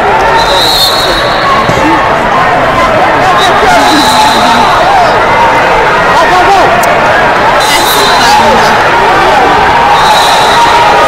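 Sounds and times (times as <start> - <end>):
spectators and coaches calling out: 0.0 - 11.0.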